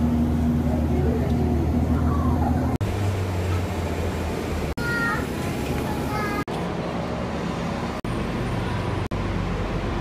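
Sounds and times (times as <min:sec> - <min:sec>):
light rail car interior hum: 0:00.0 - 0:10.0
road vehicle interior hum: 0:00.0 - 0:10.0.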